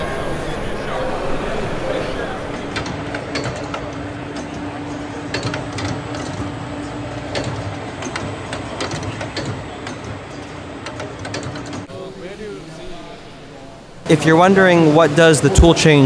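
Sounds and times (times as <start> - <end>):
machinery hum: 0.0 - 16.0
mechanical clicks and clatter: 2.5 - 11.9.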